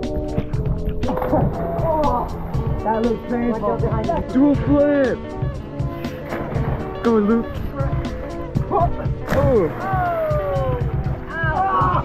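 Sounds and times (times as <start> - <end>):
background music with steady beat: 0.0 - 12.0
splash into lake water: 6.2 - 7.0, 9.2 - 10.8.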